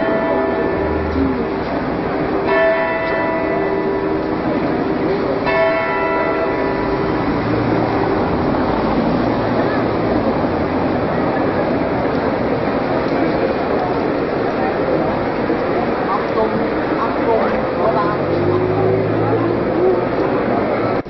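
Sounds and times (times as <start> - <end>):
clock tower bell striking: 0.0 - 10.4.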